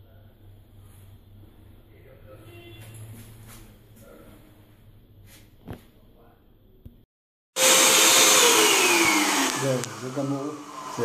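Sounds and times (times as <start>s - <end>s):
whirring machine with rushing air: 7.6s - 11.0s.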